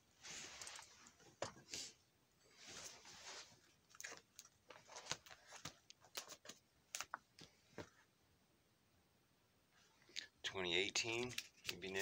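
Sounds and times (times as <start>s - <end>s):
plastic pages rustling and crinkling: 2.6s - 7.9s, 10.9s - 12.0s.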